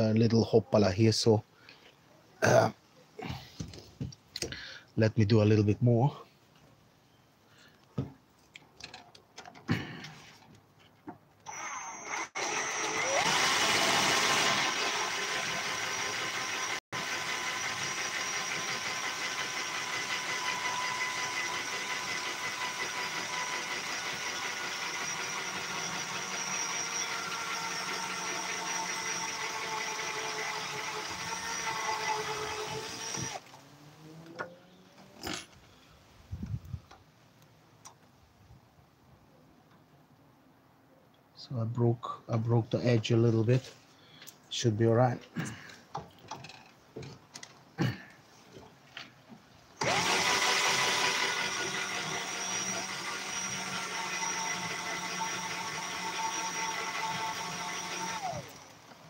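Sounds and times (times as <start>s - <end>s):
cordless drill motor whine: 11.5s - 33.5s, 49.8s - 58.8s.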